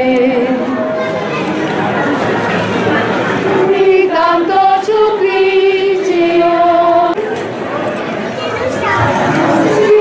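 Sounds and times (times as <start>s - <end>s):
voices singing slow melody: 0.0s - 0.9s, 3.4s - 7.2s, 9.0s - 10.0s.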